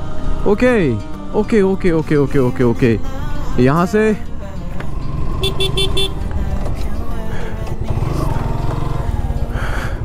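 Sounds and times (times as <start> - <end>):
motorcycle engine running: 4.7 - 10.0
horn beeping: 5.3 - 6.4.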